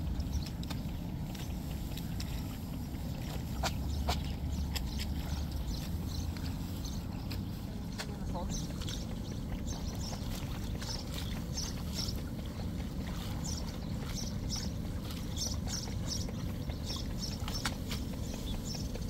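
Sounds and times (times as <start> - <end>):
splashing and rustling of wet stems: 0.0 - 19.0
steady low rumble: 0.0 - 19.0.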